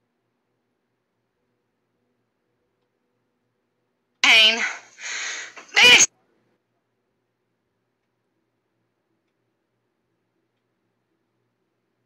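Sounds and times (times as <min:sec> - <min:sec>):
woman hissing like a cat: 0:04.2 - 0:06.1.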